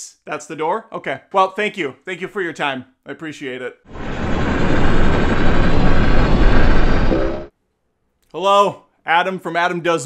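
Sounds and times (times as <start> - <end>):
deep cinematic rumble: 3.9 - 7.5.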